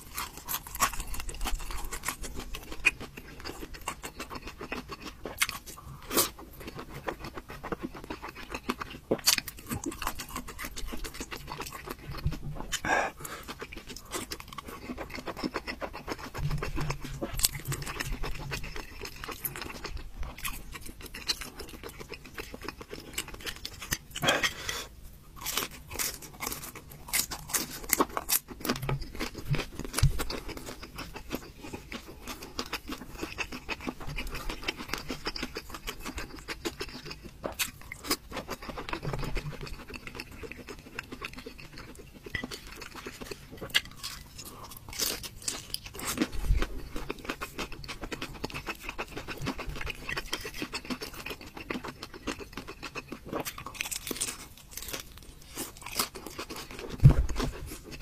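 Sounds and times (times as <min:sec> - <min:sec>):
chewing and crunching food: 0:00.0 - 0:58.0.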